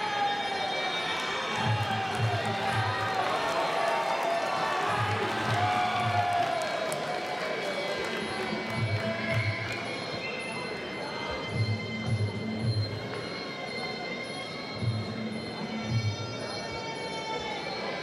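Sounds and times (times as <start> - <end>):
crowd noise: 0.0 - 18.0
drum beats: 1.6 - 3.4, 4.7 - 6.6, 8.5 - 9.8.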